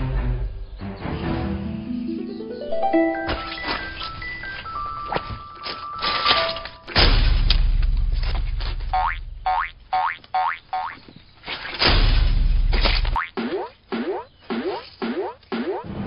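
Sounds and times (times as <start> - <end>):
high springy boings: 8.9 - 11.0, 13.2 - 16.0.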